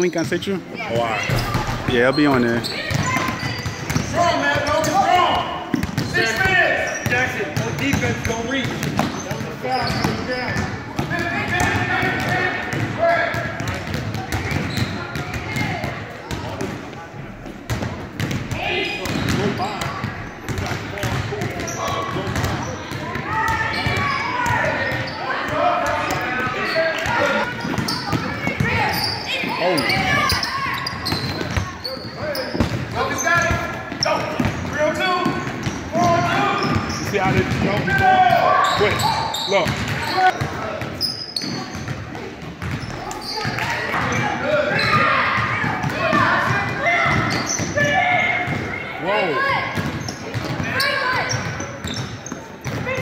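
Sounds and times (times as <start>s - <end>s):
voices in gymnasium: 0.0s - 53.0s.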